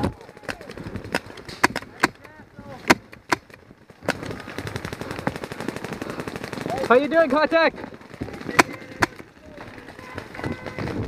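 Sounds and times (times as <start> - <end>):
paintball markers firing: 0.0 - 11.0.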